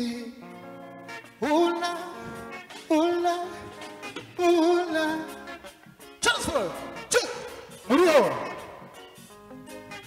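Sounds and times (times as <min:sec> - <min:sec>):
man shouting into a microphone: 0:06.2 - 0:08.8.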